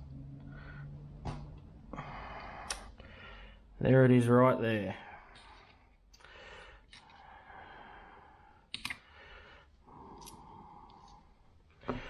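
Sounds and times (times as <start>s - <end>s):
soft breathing: 1.8s - 3.8s, 4.9s - 12.0s.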